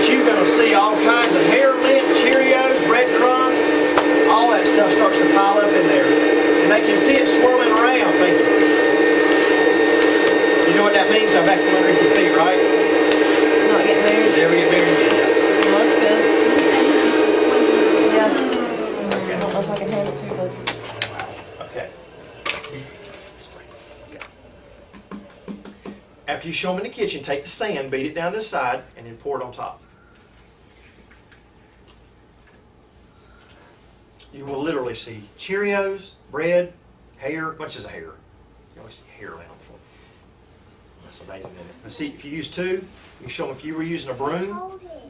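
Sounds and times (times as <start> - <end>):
vacuum cleaner running: 0.0 - 28.4, 41.2 - 44.6.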